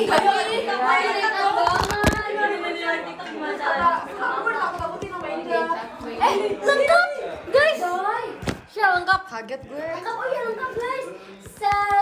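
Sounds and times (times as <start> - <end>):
women chatting: 0.0 - 12.0.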